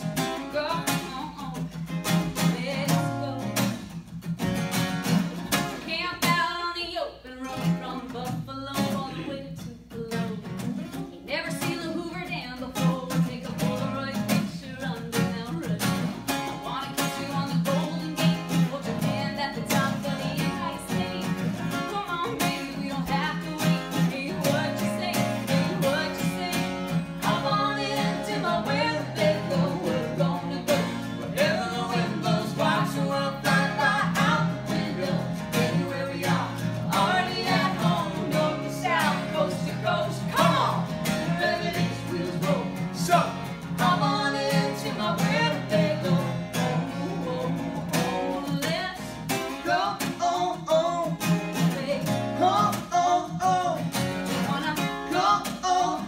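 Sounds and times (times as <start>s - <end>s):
strummed acoustic guitar: 0.0s - 56.0s
woman singing country song: 0.0s - 56.0s.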